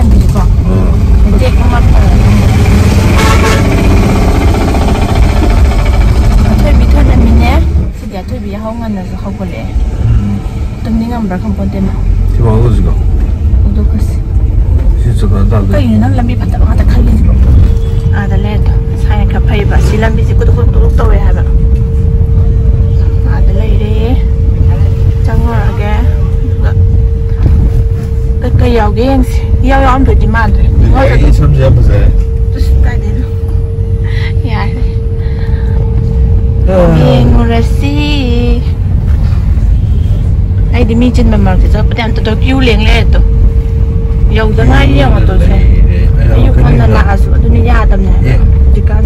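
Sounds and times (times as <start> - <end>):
people talking: 0.0 - 2.4, 6.4 - 13.0, 15.0 - 21.6, 23.2 - 26.8, 28.4 - 33.4, 34.1 - 35.5, 36.6 - 38.7, 40.7 - 43.3, 44.2 - 49.0
car engine and road rumble: 0.0 - 49.0
constant hum: 0.0 - 49.0
person talking: 30.8 - 32.2, 36.7 - 38.0, 44.4 - 47.2.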